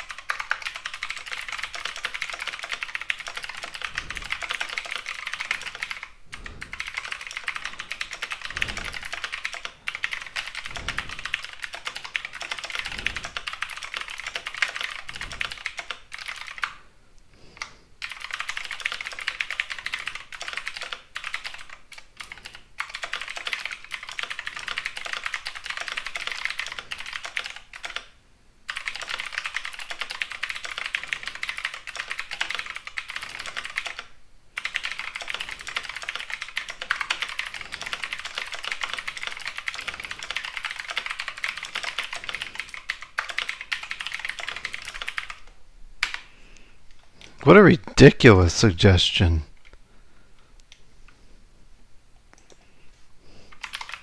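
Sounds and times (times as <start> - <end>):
typing on computer keyboard: 0.0 - 16.8, 17.6 - 46.3, 52.4 - 52.6, 53.5 - 54.0.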